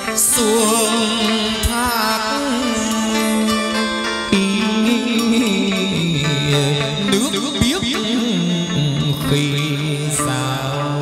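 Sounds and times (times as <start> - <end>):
traditional ritual ensemble music: 0.0 - 11.0.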